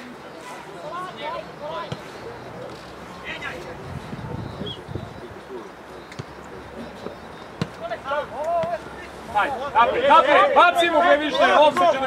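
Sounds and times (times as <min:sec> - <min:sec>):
players shouting: 0:06.8 - 0:12.0.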